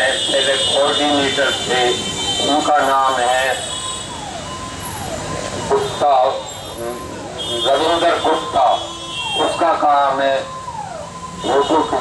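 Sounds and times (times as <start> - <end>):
man speaking over loudspeaker: 0.0 - 3.7, 5.6 - 10.5, 11.4 - 12.0.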